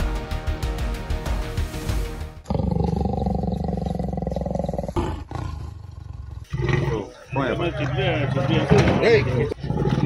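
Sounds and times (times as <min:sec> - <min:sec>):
background music: 0:00.0 - 0:04.7
big cat roaring: 0:02.4 - 0:10.0.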